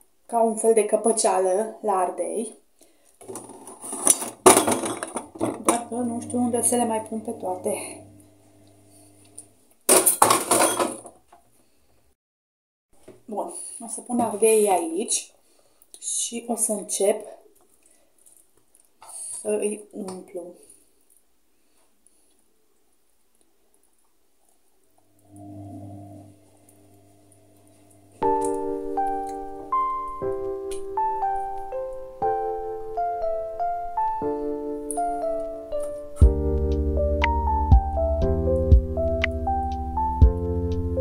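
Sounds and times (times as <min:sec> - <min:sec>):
dishes clattering on a table: 0:03.2 - 0:05.8, 0:09.9 - 0:11.2
steady low hum: 0:05.8 - 0:09.5.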